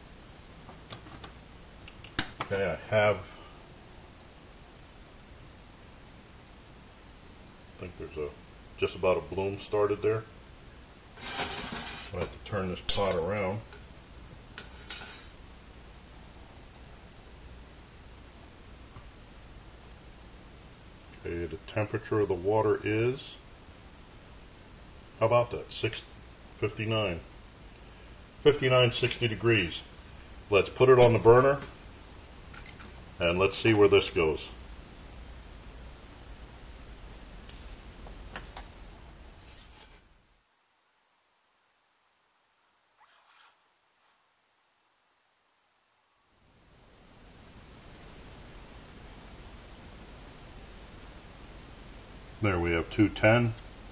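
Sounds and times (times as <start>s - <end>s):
faint steady hiss: 0.0s - 53.9s.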